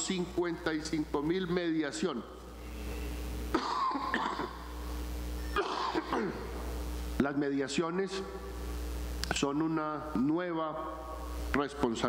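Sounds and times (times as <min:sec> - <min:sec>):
man coughing: 0:03.5 - 0:04.7, 0:05.6 - 0:06.5.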